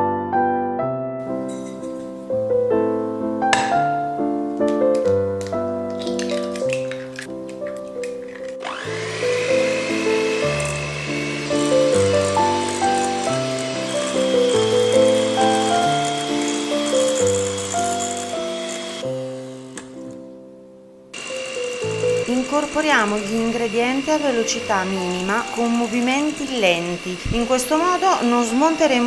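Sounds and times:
light instrumental music: 0.0s - 29.0s
electric hand mixer whining: 5.9s - 20.3s, 21.2s - 29.0s.

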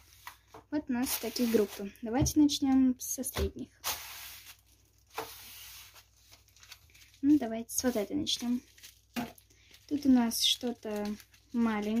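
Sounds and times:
plastic packets sliding on wood: 3.8s - 7.0s.

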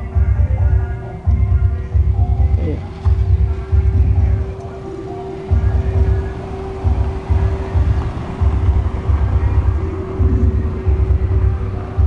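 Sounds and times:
bass-heavy music from sound system: 0.0s - 12.0s
steady hum: 0.0s - 12.0s.

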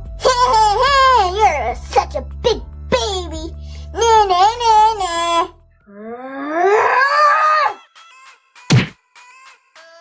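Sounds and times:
person wailing wordlessly: 5.9s - 7.8s.

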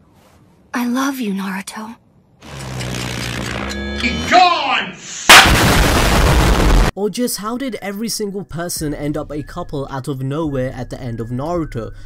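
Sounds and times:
explosion blast sound effect: 5.3s - 6.9s.

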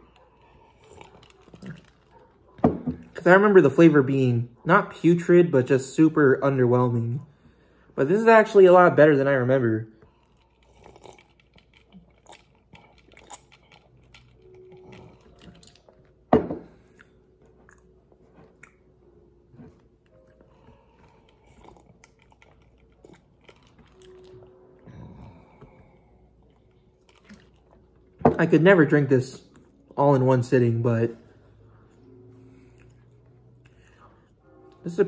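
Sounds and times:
person sipping and swallowing: 0.2s - 2.2s, 10.0s - 15.9s.

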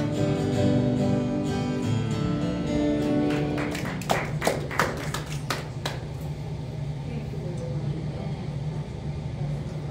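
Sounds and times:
hand claps: 3.0s - 6.1s.

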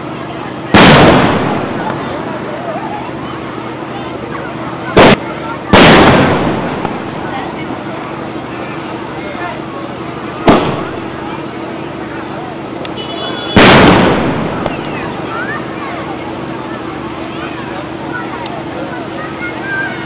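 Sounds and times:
firework shells bursting: 0.8s - 2.1s, 5.0s - 7.3s, 10.4s - 11.2s, 13.5s - 15.1s.

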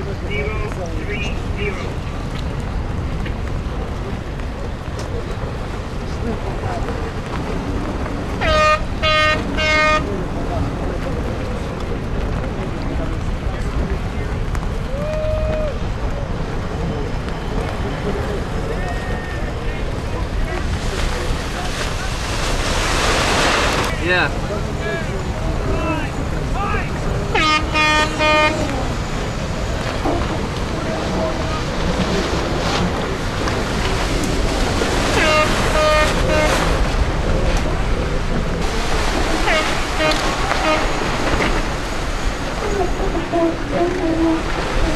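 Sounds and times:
water rushing past yachts: 0.0s - 44.9s
wind rushing: 0.0s - 44.9s.

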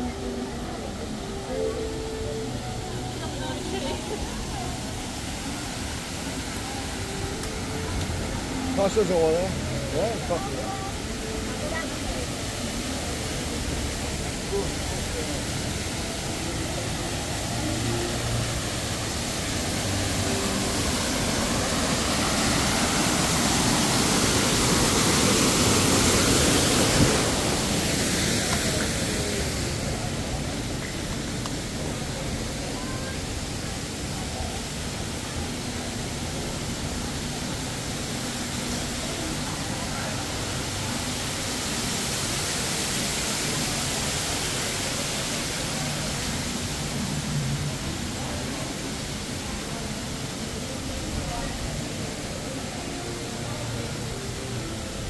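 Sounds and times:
waterfall rushing: 0.0s - 55.0s.

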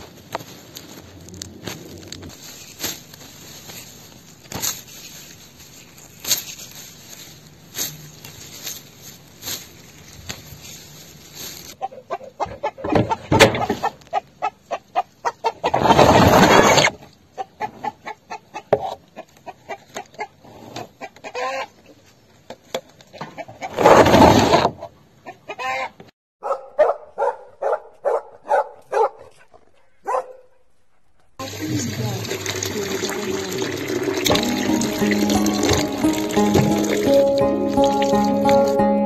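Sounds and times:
chickens clucking: 11.8s - 15.9s, 17.3s - 22.0s, 24.9s - 26.1s.

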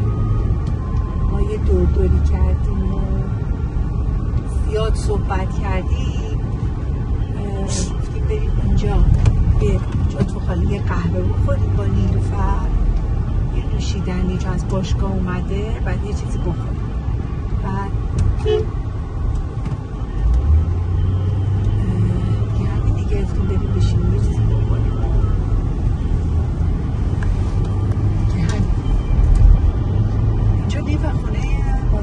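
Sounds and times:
car road and engine noise: 0.0s - 32.0s.

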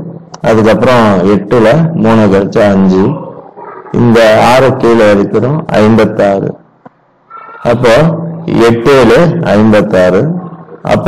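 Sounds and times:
man speaking: 0.0s - 6.7s, 7.6s - 11.0s.

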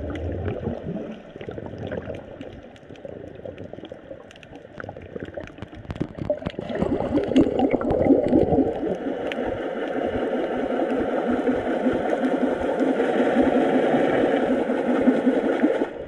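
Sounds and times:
muffled rushing water underwater: 0.0s - 16.0s.

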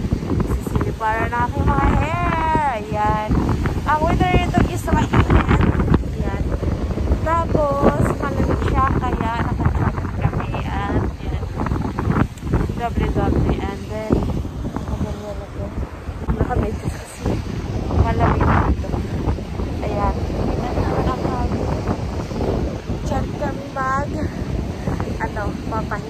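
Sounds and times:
wind buffeting microphone: 0.0s - 26.0s
person's voice: 0.4s - 6.6s, 7.2s - 11.7s, 12.7s - 21.7s, 23.0s - 26.0s.

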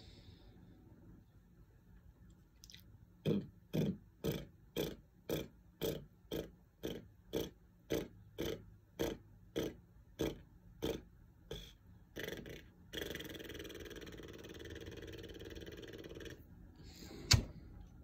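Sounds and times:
long steady exhale: 0.0s - 0.7s, 16.8s - 17.5s.

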